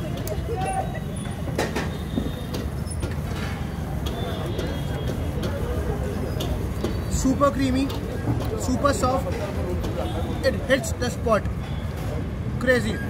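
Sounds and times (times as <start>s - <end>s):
street traffic rumble: 0.0s - 13.0s.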